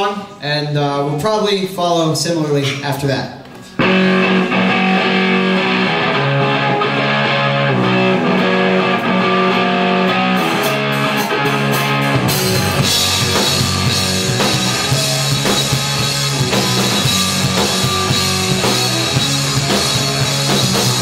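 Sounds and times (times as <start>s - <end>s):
bass guitar: 3.6s - 21.0s
electric guitar chords: 3.8s - 21.0s.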